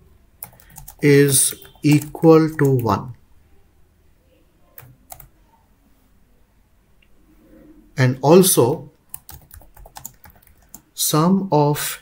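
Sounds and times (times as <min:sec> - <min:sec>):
faint keystrokes on a keyboard: 0:00.4 - 0:01.0, 0:09.1 - 0:10.9.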